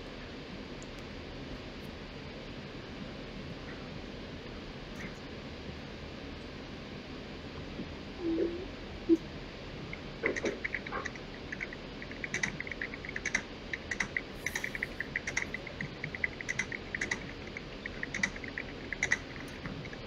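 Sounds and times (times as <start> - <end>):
keyboard typing and mouse clicks: 10.2 - 20.0.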